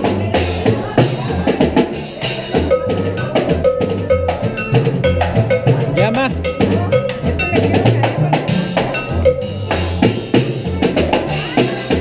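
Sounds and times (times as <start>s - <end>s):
bass line: 0.0s - 12.0s
cowbell beat: 0.0s - 12.0s
repeated melody note: 2.6s - 7.8s, 8.6s - 10.7s.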